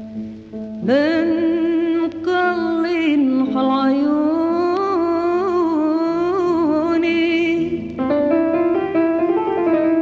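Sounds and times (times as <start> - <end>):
quiet instrumental accompaniment: 0.0 - 10.0
woman singing a long note: 0.8 - 7.9.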